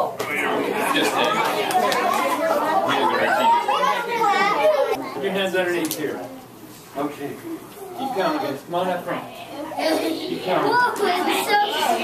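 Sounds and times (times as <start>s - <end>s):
young children chattering: 0.0s - 5.5s, 7.4s - 12.0s.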